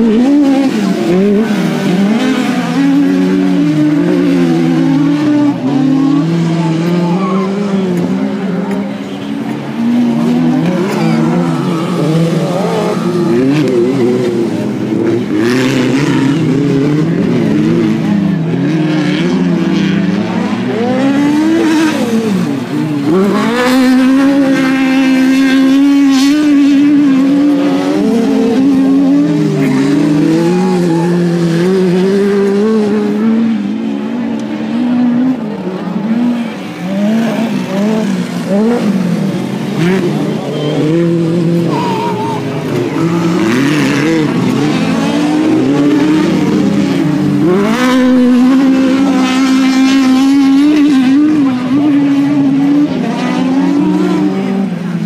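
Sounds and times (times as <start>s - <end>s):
buggy engines revving: 0.0s - 55.0s.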